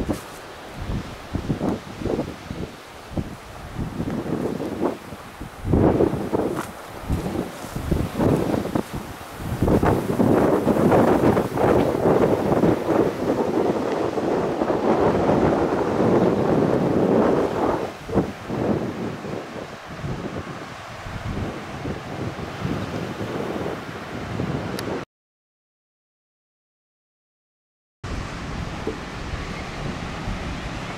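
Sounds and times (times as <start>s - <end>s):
wind buffeting microphone: 0.0s - 25.0s, 28.1s - 30.9s.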